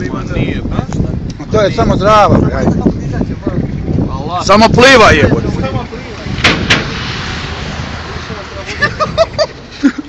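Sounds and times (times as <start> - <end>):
rushing noise with low rumble: 0.0 - 10.0.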